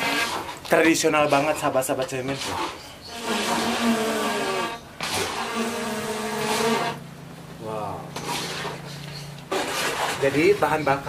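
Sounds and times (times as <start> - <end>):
coconut shells scraping: 0.0 - 7.0, 8.1 - 11.0.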